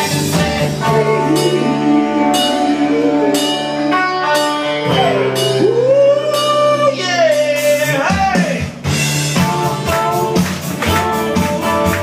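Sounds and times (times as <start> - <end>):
live rock band playing: 0.0 - 12.0
drum and cymbal hits: 7.3 - 12.0.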